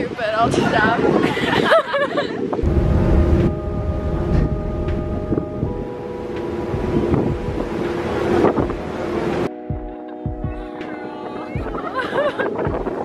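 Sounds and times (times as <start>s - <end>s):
wind buffeting microphone: 0.0s - 10.8s, 11.4s - 13.0s
ferry engine drone: 2.6s - 9.5s.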